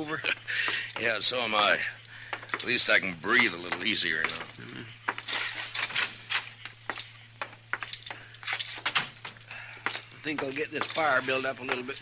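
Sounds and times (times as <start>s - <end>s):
fire crackling and popping: 0.0s - 12.0s
low recording hum: 0.0s - 12.0s.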